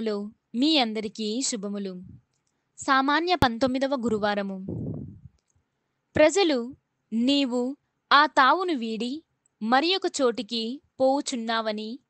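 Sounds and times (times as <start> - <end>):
person reading aloud: 0.0 - 2.2, 2.8 - 5.2, 6.2 - 12.0.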